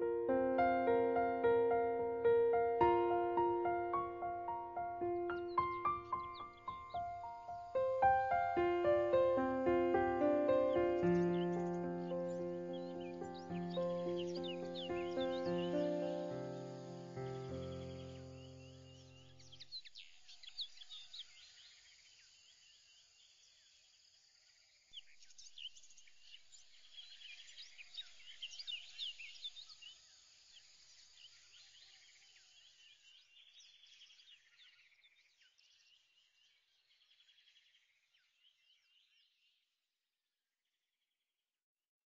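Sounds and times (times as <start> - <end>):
bird chorus chirps and trills: 0.1 - 22.3, 24.9 - 39.5.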